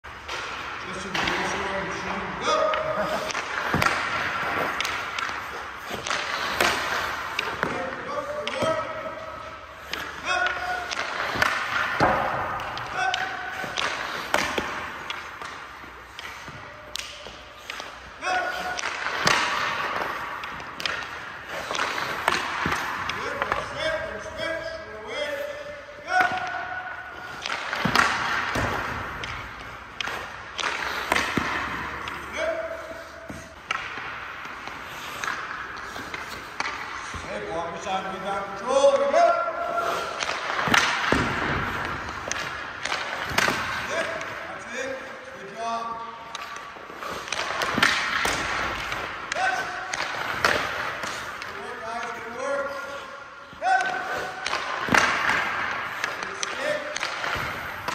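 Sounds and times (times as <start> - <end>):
hockey pucks cracking off sticks: 0.1 - 57.9.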